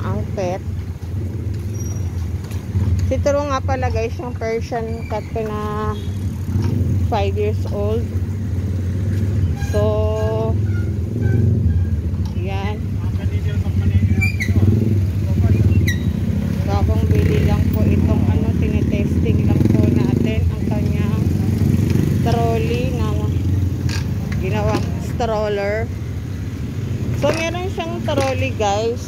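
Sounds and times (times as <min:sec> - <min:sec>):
voices: 0:00.0 - 0:00.7, 0:03.0 - 0:08.2, 0:09.6 - 0:10.6, 0:12.2 - 0:26.0, 0:27.0 - 0:29.0.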